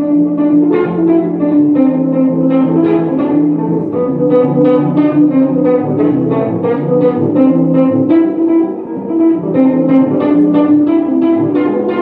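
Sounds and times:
electric guitar solo: 0.0s - 12.0s
live band backing: 0.0s - 12.0s.

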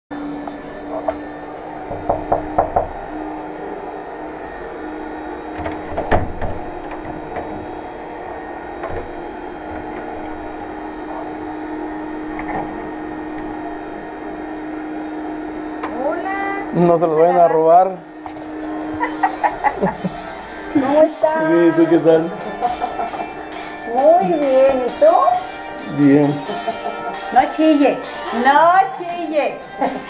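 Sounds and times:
low hum: 0.1s - 25.8s
knocking on a door: 1.9s - 3.0s.

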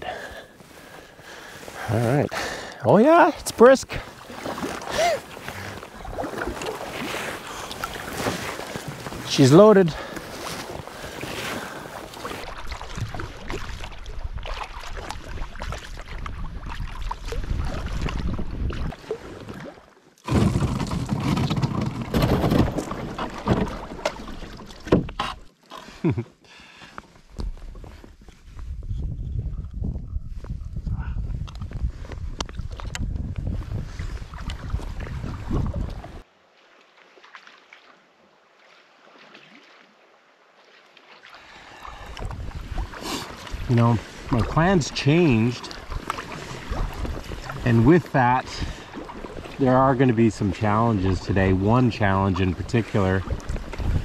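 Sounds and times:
kayak paddle strokes: 0.1s - 28.8s, 40.6s - 54.0s
wind on microphone: 12.6s - 19.0s, 27.4s - 36.2s, 42.0s - 45.0s, 45.8s - 47.8s, 51.0s - 54.0s.

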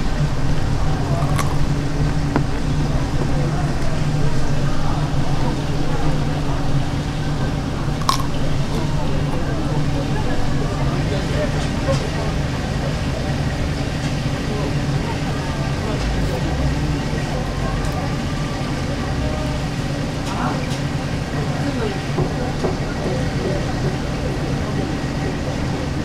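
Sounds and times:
background voices: 0.0s - 13.4s
steady low hum: 0.0s - 26.0s.

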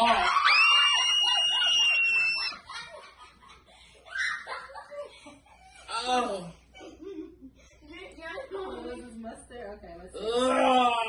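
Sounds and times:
people laughing: 0.0s - 5.9s, 6.6s - 7.8s.

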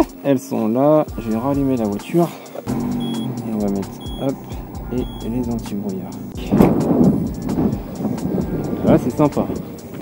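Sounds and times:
car engine idling: 2.7s - 8.8s.

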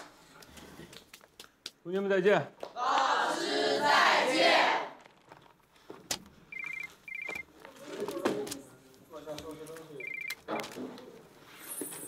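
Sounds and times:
phone ringing with electronic beeps: 6.5s - 7.5s, 10.0s - 10.7s.

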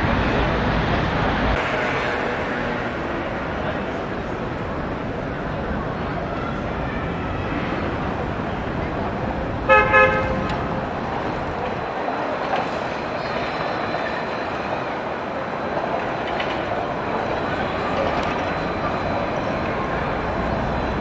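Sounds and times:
steady background noise: 0.0s - 21.0s
vehicle horn toots: 9.7s - 10.6s.

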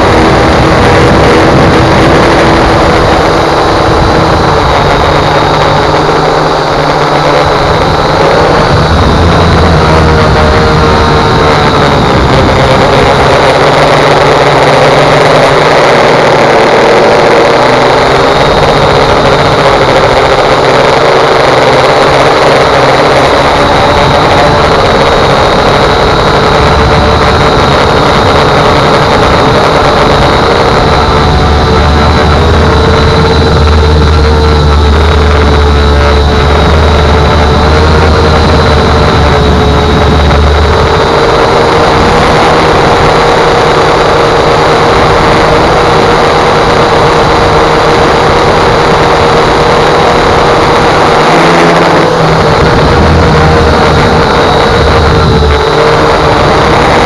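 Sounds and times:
drone motors humming: 0.0s - 57.0s.

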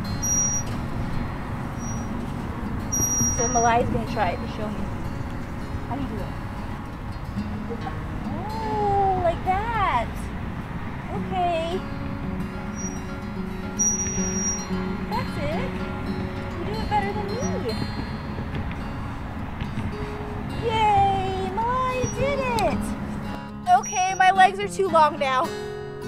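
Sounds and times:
soft background music: 0.2s - 26.0s
toddler squealing: 3.0s - 3.7s, 13.8s - 14.7s, 22.0s - 22.5s.

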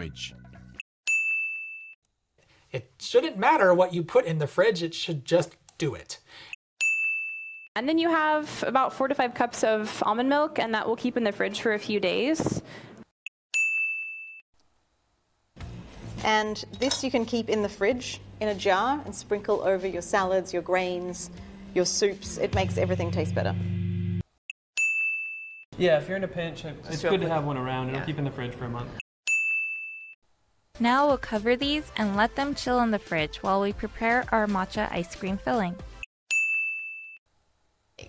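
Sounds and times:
bell-like chime ding: 1.1s - 2.0s, 6.8s - 7.7s, 13.6s - 14.4s, 29.3s - 30.2s, 36.3s - 37.2s
bright bell ding: 1.1s - 2.0s, 36.3s - 37.2s.

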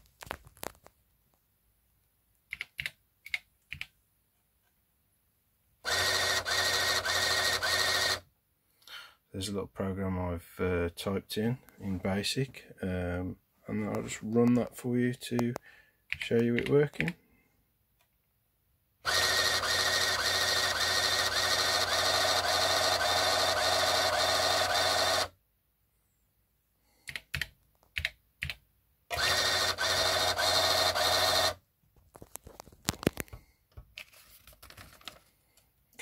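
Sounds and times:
thermal printer printing: 5.9s - 8.2s, 19.1s - 25.3s, 29.1s - 31.6s.

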